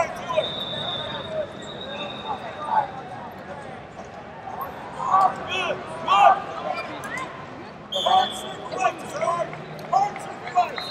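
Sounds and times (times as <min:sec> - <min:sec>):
high whistle-like tone: 0:00.2 - 0:02.7.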